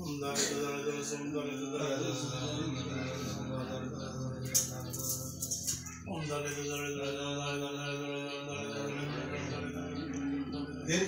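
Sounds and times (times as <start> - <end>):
person chanting a long note: 0.0 - 11.0.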